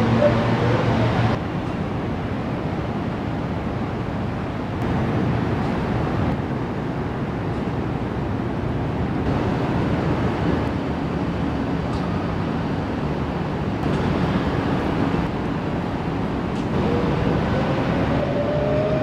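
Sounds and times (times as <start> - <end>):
traffic rumble: 0.0 - 19.0
wind on microphone: 9.1 - 19.0.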